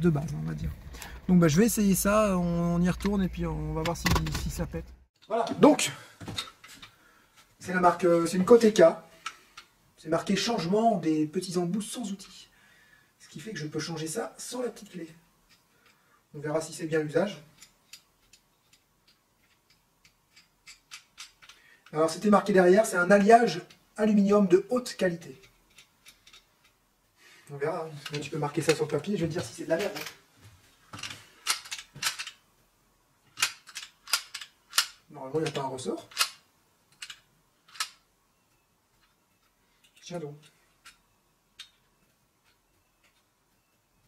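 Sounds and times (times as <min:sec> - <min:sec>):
rivet gun clicks and ticks: 0:33.4 - 0:38.0.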